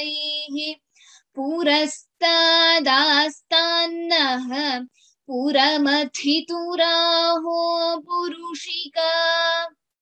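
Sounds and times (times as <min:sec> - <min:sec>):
woman chanting: 0:00.0 - 0:09.8.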